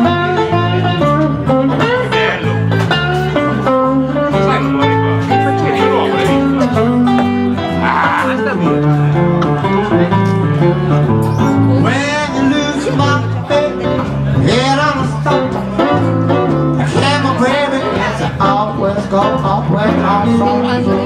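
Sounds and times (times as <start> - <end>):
acoustic guitar: 0.0 - 21.0
electric guitar: 0.0 - 21.0
low bass notes: 0.0 - 21.0.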